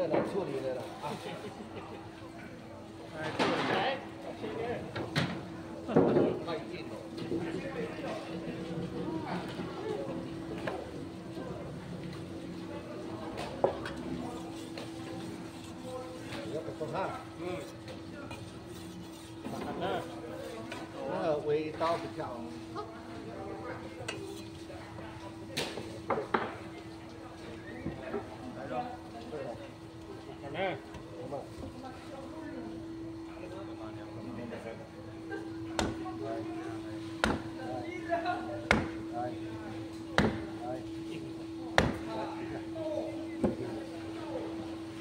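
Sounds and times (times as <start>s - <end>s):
people talking: 0.0s - 18.7s, 19.4s - 45.0s.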